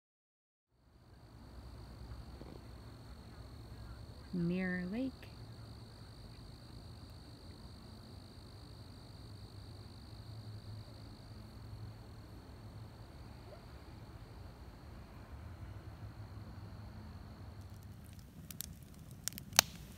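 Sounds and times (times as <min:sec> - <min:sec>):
crickets trilling: 0:00.8 - 0:19.9
wood fire crackling: 0:05.2 - 0:10.1, 0:16.9 - 0:19.9.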